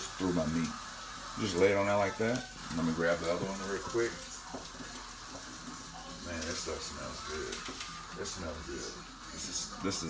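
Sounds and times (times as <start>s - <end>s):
fish fillet sizzling: 0.0s - 10.0s.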